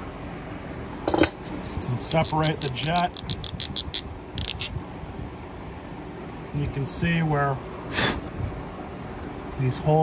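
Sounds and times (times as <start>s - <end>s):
sharp plastic clicks: 2.2s - 4.7s.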